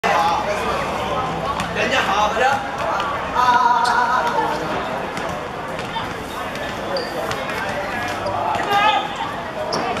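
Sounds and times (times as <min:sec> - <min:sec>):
voices shouting: 0:08.4 - 0:09.4.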